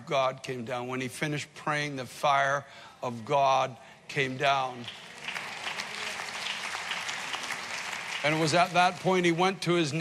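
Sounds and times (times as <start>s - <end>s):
preacher speaking: 0.0s - 5.0s, 8.2s - 10.0s
congregation clapping: 4.4s - 10.0s.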